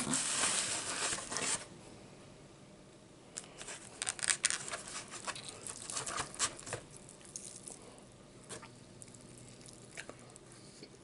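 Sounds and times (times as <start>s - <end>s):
ribs crackling and tearing: 3.9s - 7.8s.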